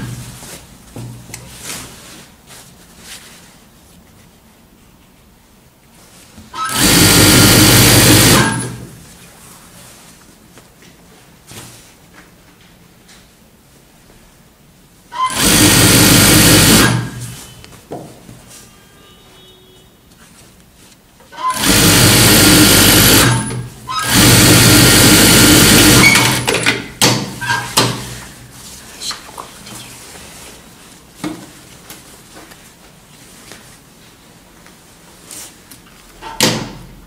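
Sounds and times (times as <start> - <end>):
industrial sewing machine stitching: 6.6 - 9.0, 15.2 - 17.3, 21.4 - 28.2.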